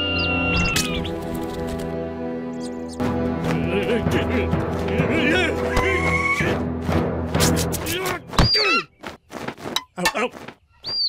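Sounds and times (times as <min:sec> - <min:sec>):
wings flapping: 0:00.7 - 0:01.9
eagle screeching: 0:05.7 - 0:06.6, 0:08.4 - 0:08.9.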